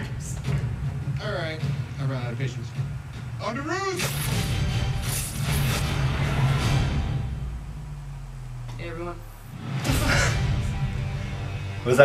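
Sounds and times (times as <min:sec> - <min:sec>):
dramatic music: 0:00.0 - 0:12.0
deep sustained low rumble: 0:05.4 - 0:11.8.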